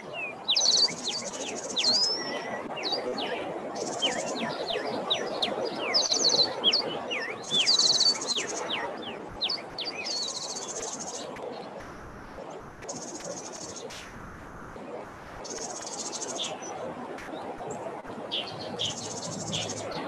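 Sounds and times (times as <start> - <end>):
birds chirping: 0.0 - 20.0
steady background noise: 0.0 - 20.0.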